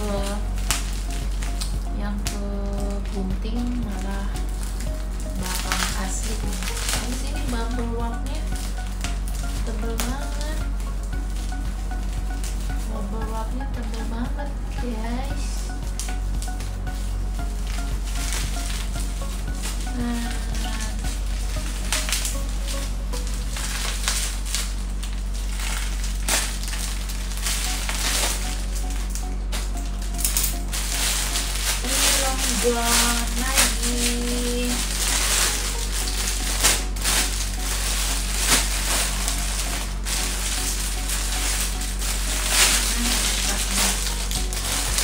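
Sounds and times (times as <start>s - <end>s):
background music: 0.0s - 45.0s
plastic packaging crinkling: 0.0s - 45.0s.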